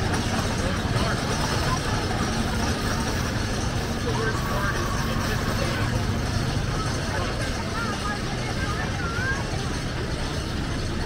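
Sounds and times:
people talking: 0:00.0 - 0:11.0
roller coaster train rumbling: 0:00.0 - 0:11.0.

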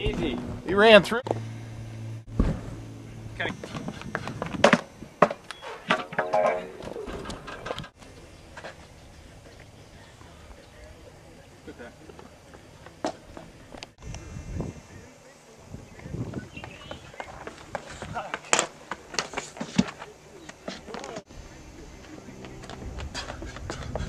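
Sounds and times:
people talking: 0:00.0 - 0:01.2, 0:03.4 - 0:03.6, 0:05.9 - 0:24.0.

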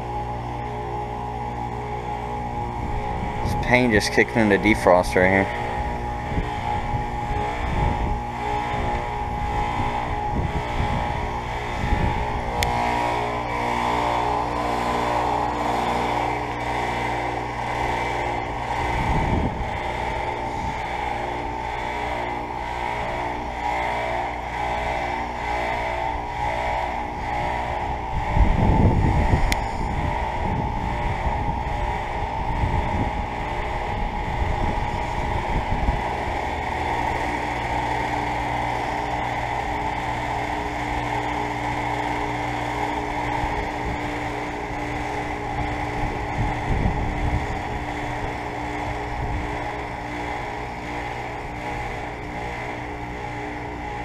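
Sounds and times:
compressor humming: 0:00.0 - 0:54.0.

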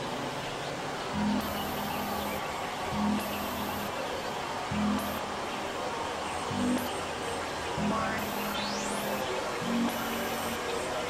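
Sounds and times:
synthesizer hissing noise: 0:01.2 - 0:05.4, 0:06.4 - 0:11.0
very high hiss: 0:01.3 - 0:11.0.

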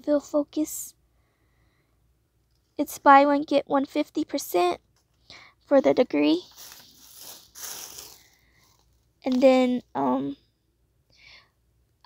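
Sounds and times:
paper receipts rustling: 0:05.0 - 0:09.7.

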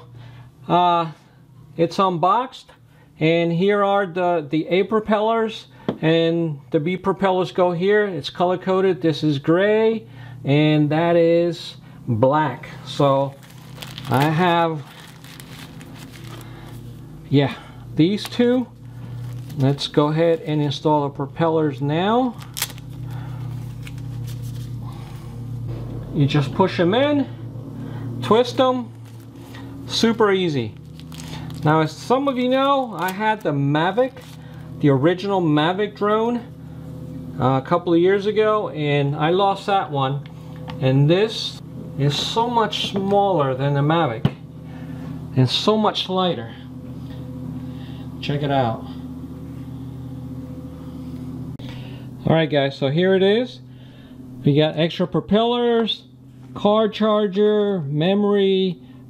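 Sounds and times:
steady low hum: 0:00.0 - 0:59.0
plastic bags crinkling: 0:13.2 - 0:17.0, 0:18.1 - 0:20.5, 0:22.3 - 0:24.7, 0:28.9 - 0:34.7.

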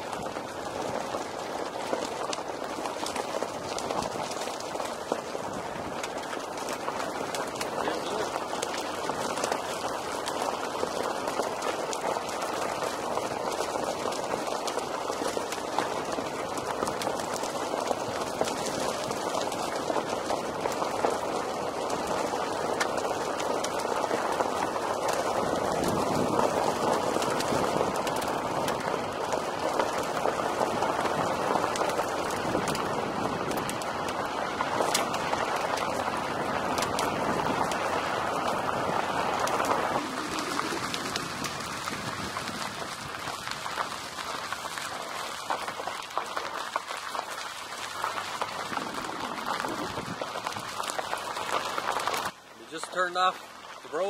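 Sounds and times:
stones pinging off car: 0:00.0 - 0:54.0
tyres crunching on gravel: 0:00.0 - 0:54.0.

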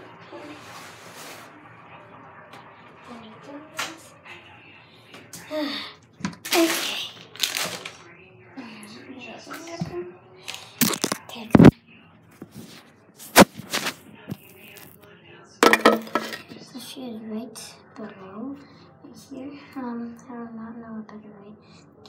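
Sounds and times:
quiet speech: 0:00.0 - 0:15.6, 0:16.4 - 0:22.0.

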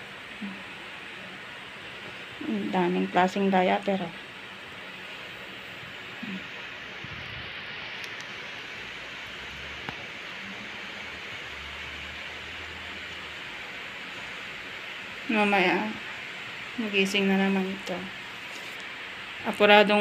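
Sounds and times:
steady hiss of machines: 0:00.0 - 0:20.0.

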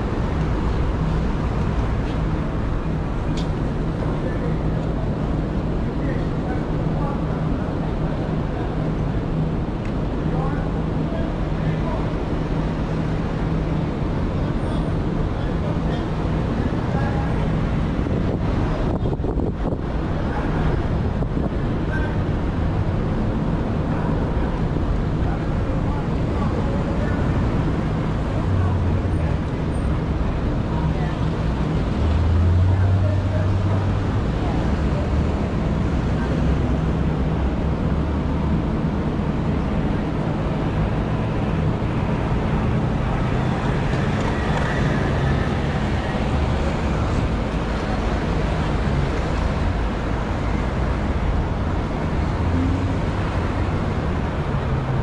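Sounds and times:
low engine hum: 0:00.0 - 0:55.0
street traffic rumble: 0:00.0 - 0:55.0.

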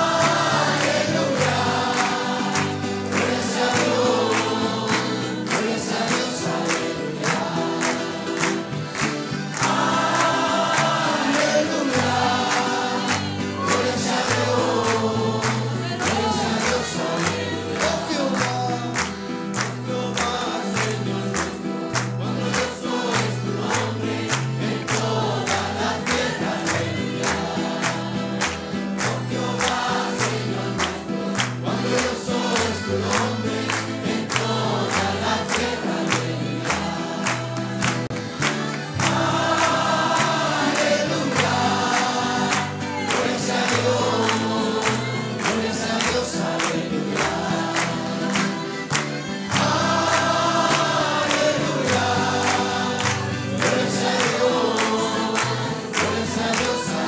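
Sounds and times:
congregation singing: 0:00.0 - 0:57.0
instrumental accompaniment with bass: 0:00.0 - 0:57.0
people clapping in time: 0:00.0 - 0:57.0.

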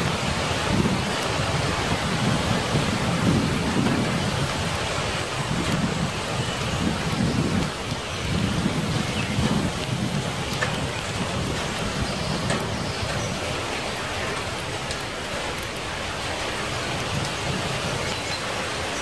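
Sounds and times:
rain hissing: 0:00.0 - 0:19.0.

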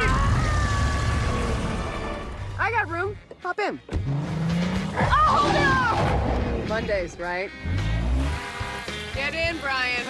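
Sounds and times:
car engine humming: 0:01.2 - 0:10.0.

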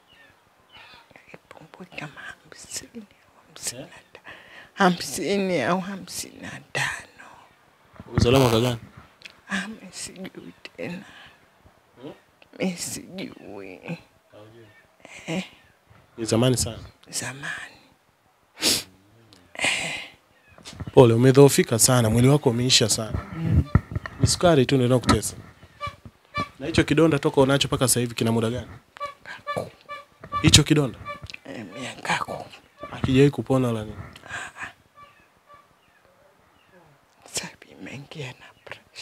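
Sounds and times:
woman whispering choked words: 0:00.8 - 0:04.3, 0:17.0 - 0:17.9, 0:36.7 - 0:39.0.

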